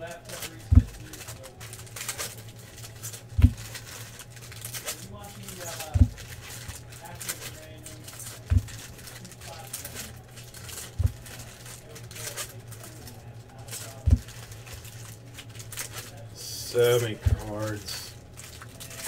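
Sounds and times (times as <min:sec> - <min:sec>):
foil wrappers crinkling and tearing: 0:00.0 - 0:19.0.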